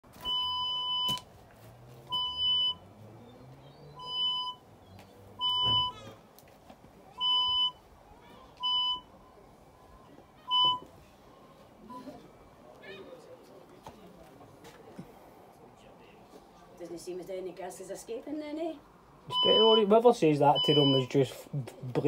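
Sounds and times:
electronic beeps: 0:00.2 - 0:01.2, 0:02.1 - 0:02.8, 0:03.6 - 0:04.6, 0:05.4 - 0:06.0, 0:19.3 - 0:19.9, 0:20.6 - 0:21.1.

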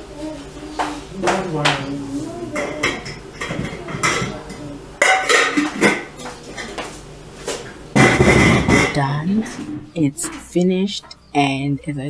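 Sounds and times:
dishes and cutlery clattering: 0:02.5 - 0:06.9, 0:08.0 - 0:10.4.

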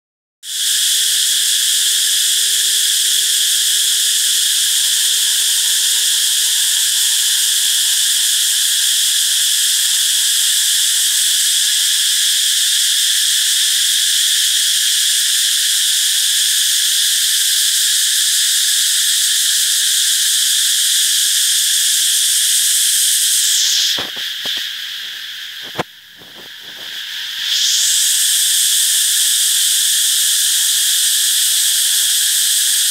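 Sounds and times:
insects chorus shrilling: 0:00.4 - 0:32.9.

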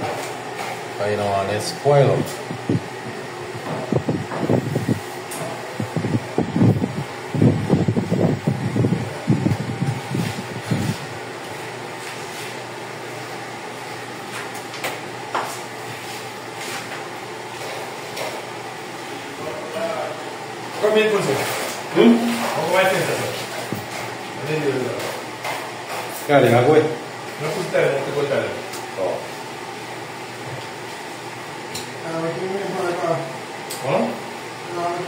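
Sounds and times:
steady mechanical hum: 0:00.0 - 0:35.0.

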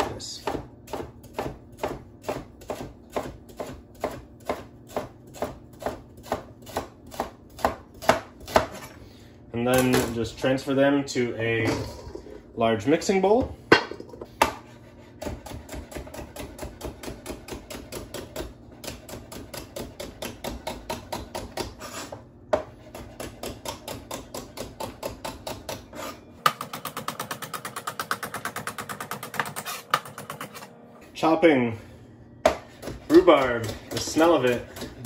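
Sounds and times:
knife chopping on plastic board: 0:00.4 - 0:08.9, 0:15.2 - 0:30.6, 0:32.4 - 0:35.0.

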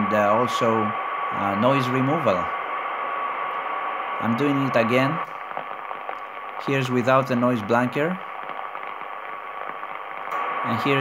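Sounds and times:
pulsating radio interference: 0:00.0 - 0:11.0
radio band noise rush: 0:00.0 - 0:11.0
weak radio signal tone: 0:00.0 - 0:11.0.

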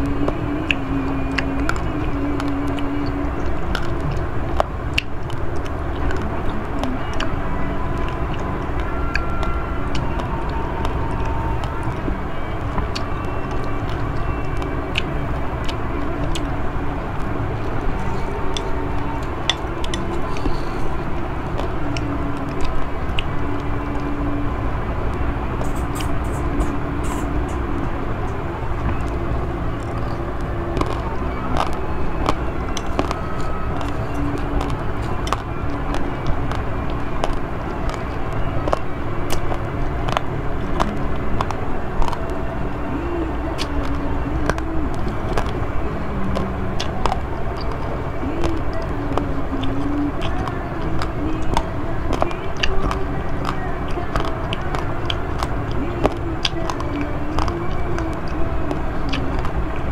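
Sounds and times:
crunchy chewing: 0:00.0 - 0:59.9
steady low rumble: 0:00.0 - 0:59.9.

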